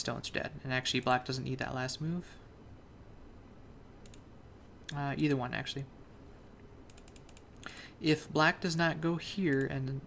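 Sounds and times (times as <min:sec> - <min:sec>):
low steady hum: 0:00.0 - 0:10.0
faint computer clicks: 0:04.0 - 0:05.0, 0:06.8 - 0:07.9.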